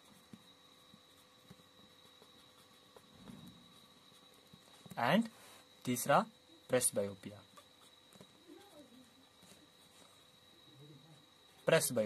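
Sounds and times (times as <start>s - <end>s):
marker writing on board: 0.0s - 5.0s, 7.4s - 10.2s
thin high whine: 0.0s - 12.0s.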